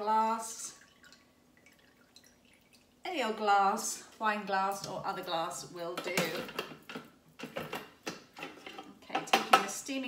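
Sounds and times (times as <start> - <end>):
juice trickling into glass: 0.8 - 3.0.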